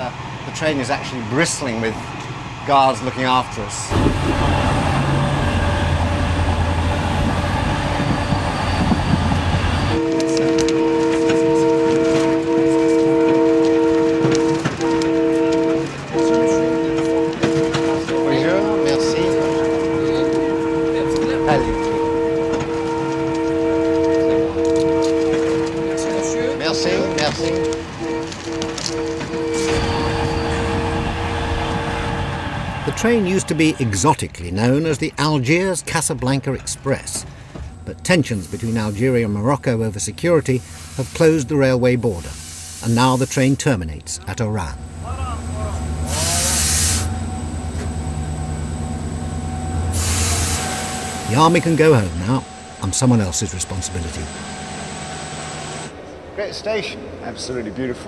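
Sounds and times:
train rumbling: 0.0 - 58.0.

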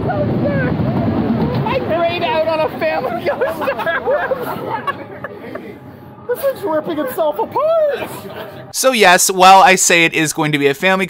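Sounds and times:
riders laughing and shouting: 0.0 - 8.8
roller coaster train rumble: 0.0 - 8.8.

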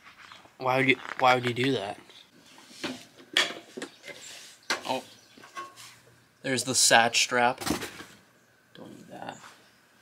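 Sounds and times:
parts clattering: 2.6 - 6.0.

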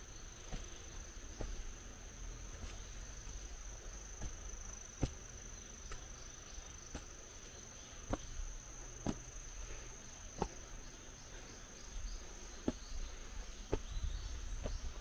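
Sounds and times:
footsteps on stone steps: 0.0 - 15.0
woodland ambience: 0.0 - 15.0.

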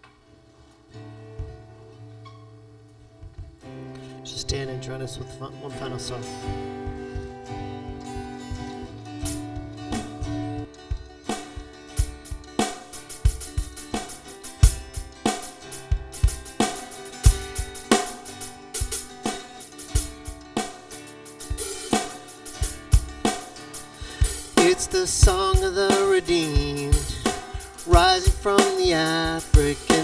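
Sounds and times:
acoustic guitar chords: 0.0 - 30.0
drum kit beat: 3.2 - 3.8, 5.3 - 30.0.

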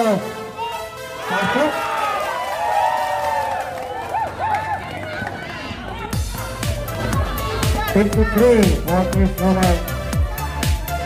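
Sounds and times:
players and spectators shouting: 0.4 - 11.0.

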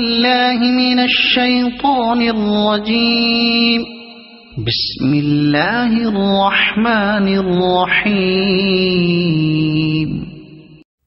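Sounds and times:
person chanting melodically: 0.0 - 10.8.

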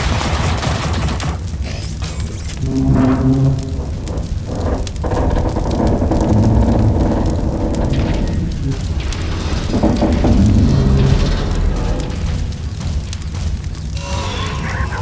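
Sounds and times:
film score music: 0.0 - 15.0
large fire burning: 0.0 - 15.0
low rumble: 1.5 - 15.0.

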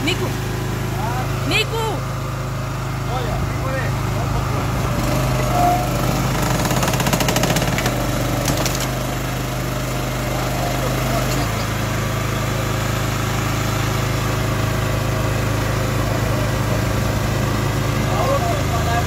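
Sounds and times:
petrol engine running: 0.0 - 19.0.

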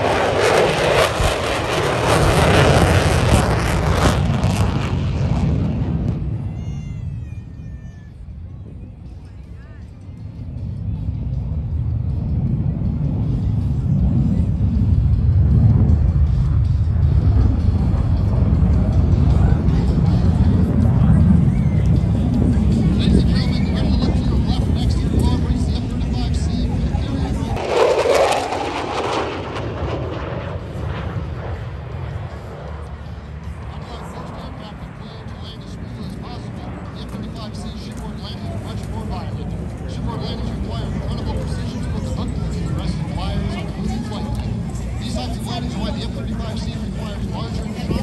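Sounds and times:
jet engine roar: 0.0 - 48.0.

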